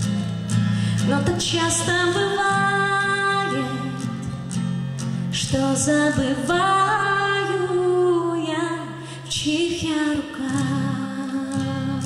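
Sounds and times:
strummed acoustic guitar: 0:00.0 - 0:12.0
woman singing: 0:00.9 - 0:04.4, 0:05.3 - 0:12.0.

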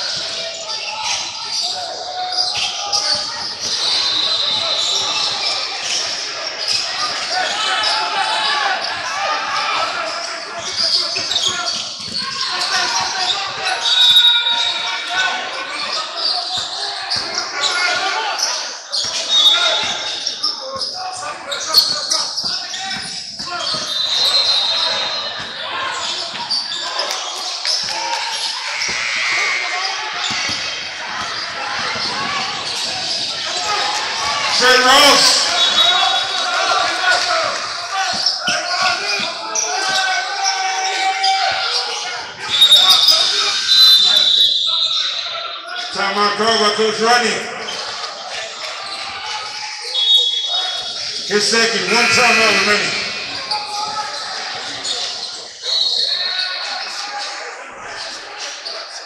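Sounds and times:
voices calling out: 0:00.0 - 0:59.0
basketball bouncing on court: 0:10.6 - 0:13.1, 0:21.8 - 0:26.4.

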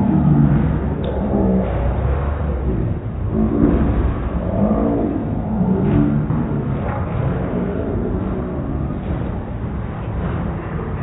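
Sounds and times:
drawn-out low tones: 0:00.0 - 0:11.0
slowed bowling alley rumble: 0:00.0 - 0:11.0.

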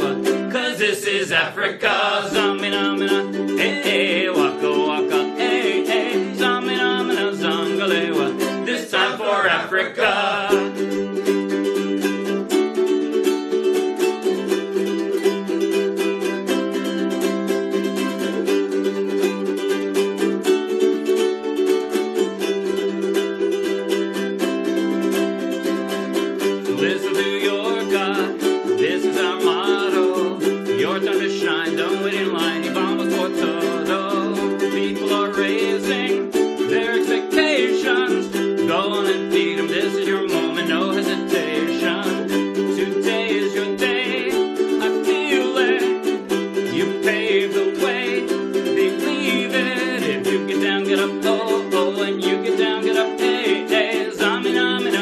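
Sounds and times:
ukuleles strumming chords: 0:00.0 - 0:55.0.

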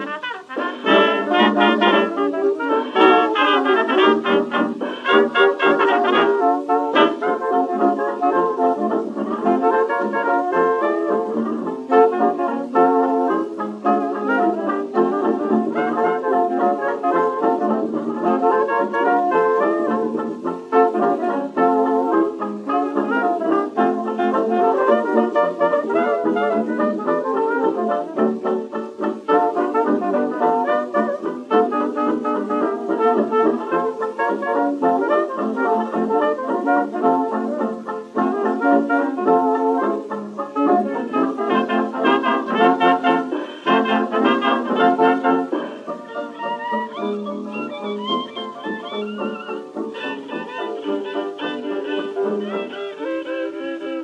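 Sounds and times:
dance band playing a foxtrot: 0:00.0 - 0:54.0.

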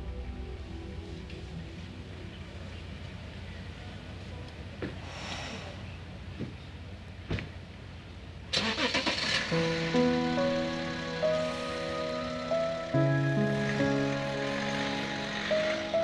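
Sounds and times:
slow background music: 0:00.0 - 0:04.7, 0:08.7 - 0:16.0
car engine starting: 0:08.5 - 0:16.0.

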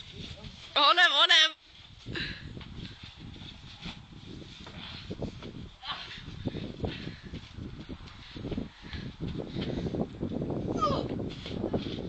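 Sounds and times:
wind rumbling on microphone: 0:00.0 - 0:00.8, 0:01.7 - 0:12.0.

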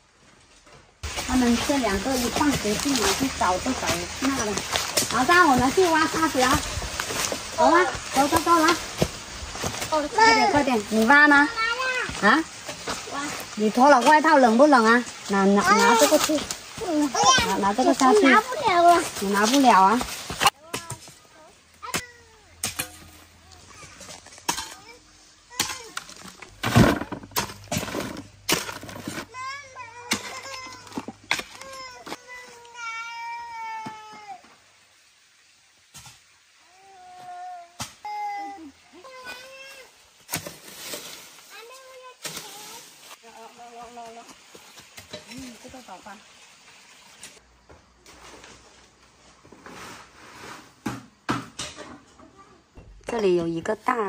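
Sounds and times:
child calling and whining: 0:10.0 - 0:10.7, 0:11.5 - 0:12.2, 0:15.6 - 0:19.0, 0:20.6 - 0:22.6, 0:29.3 - 0:34.5, 0:36.6 - 0:40.0.

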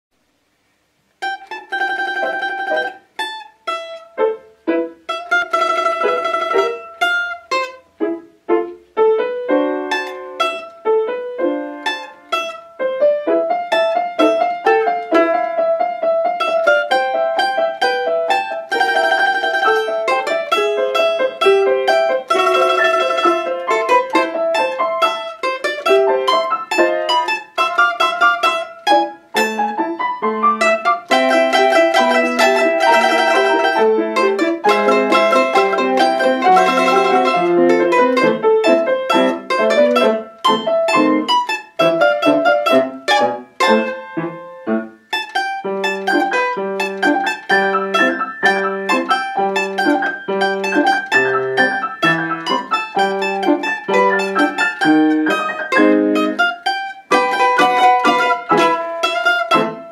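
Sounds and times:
mandolin melody: 0:01.0 - 0:59.9
piano accompaniment: 0:01.2 - 0:59.9.

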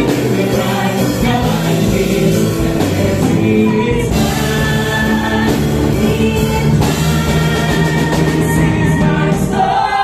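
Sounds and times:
choir singing a gospel hymn: 0:00.0 - 0:10.0
live band accompaniment: 0:00.0 - 0:10.0.

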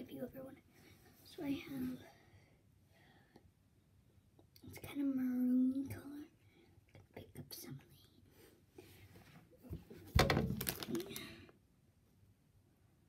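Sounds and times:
faint whispering: 0:04.7 - 0:08.4.

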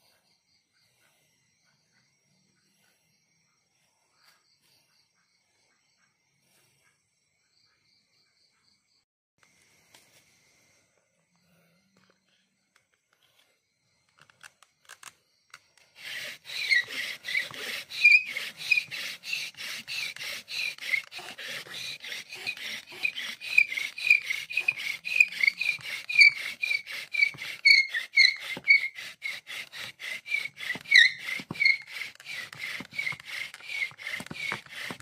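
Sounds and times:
bow drill rubbing and squeaking: 0:12.8 - 0:35.0.

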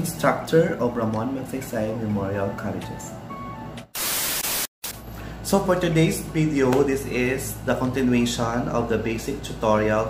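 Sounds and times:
static hiss burst: 0:03.9 - 0:05.0.

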